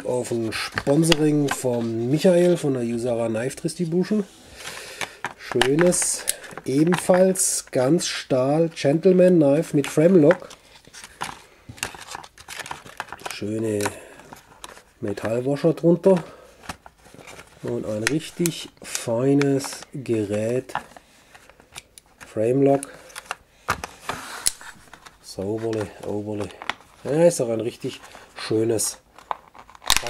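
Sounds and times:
plastic crinkling: 0:09.6 - 0:15.4, 0:22.9 - 0:30.0.

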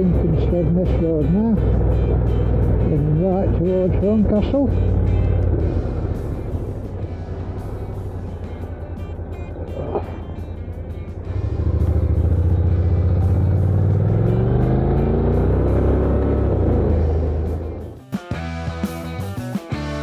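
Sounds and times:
motorcycle engine accelerating: 0:00.0 - 0:20.0.

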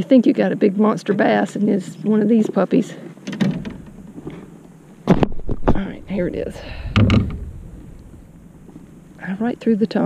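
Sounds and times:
faint rustling: 0:01.8 - 0:10.0.

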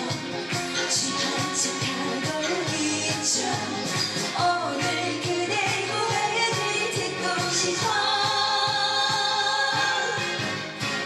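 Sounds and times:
backing track with steady beat: 0:00.0 - 0:11.0
woman singing pop song: 0:00.0 - 0:11.0.

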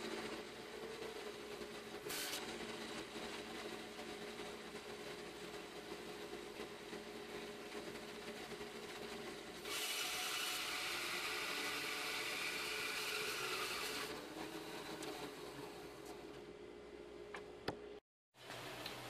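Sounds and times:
saw blade cutting log: 0:09.6 - 0:15.4.

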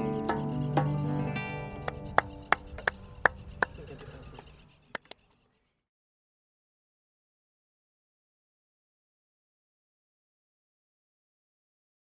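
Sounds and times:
acoustic guitar chord ringing: 0:00.0 - 0:02.0
hand claps: 0:01.8 - 0:03.8, 0:04.9 - 0:05.2.

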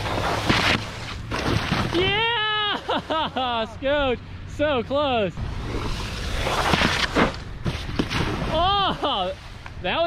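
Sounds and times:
steady low rumble: 0:03.0 - 0:09.9.

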